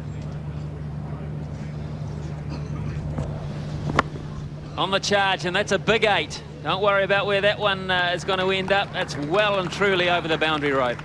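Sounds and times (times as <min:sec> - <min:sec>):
murmur of crowd voices: 0:00.0 - 0:11.0
steady low hum: 0:00.0 - 0:11.0.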